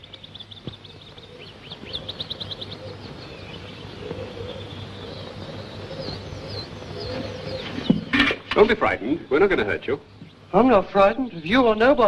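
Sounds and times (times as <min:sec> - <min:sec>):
bird chirping: 0:00.0 - 0:12.0.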